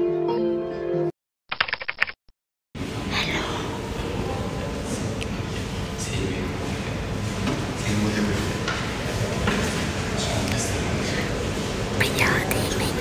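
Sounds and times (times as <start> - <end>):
murmur of voices: 2.8 - 13.0.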